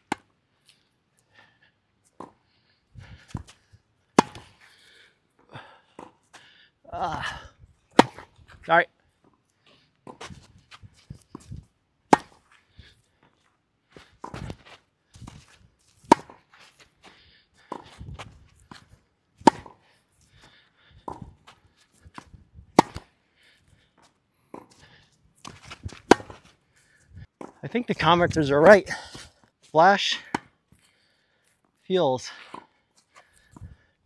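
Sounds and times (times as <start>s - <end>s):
racket hitting tennis ball: 0.1s - 0.3s, 4.2s - 4.6s, 7.9s - 8.3s, 12.1s - 12.4s, 14.2s - 15.4s, 16.0s - 16.5s, 17.7s - 19.8s, 21.0s - 21.4s, 22.1s - 23.1s, 25.4s - 26.5s, 30.3s - 30.5s
footsteps on clay: 3.1s - 4.7s, 9.7s - 23.1s, 24.0s - 33.9s
ball bouncing: 4.2s - 4.5s, 19.4s - 19.8s
distant racket hits: 4.2s - 4.6s, 7.9s - 8.3s, 12.1s - 12.4s, 16.1s - 16.5s, 19.4s - 19.8s, 22.2s - 23.1s, 25.4s - 26.5s.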